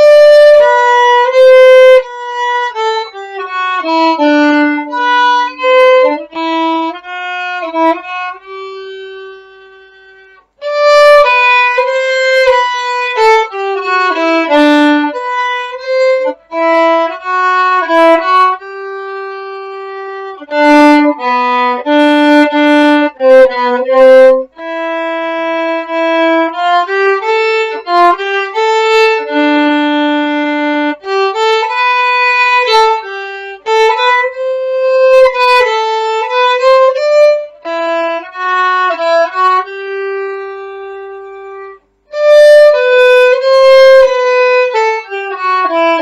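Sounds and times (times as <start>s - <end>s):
solo violin melody: 0.0s - 46.0s.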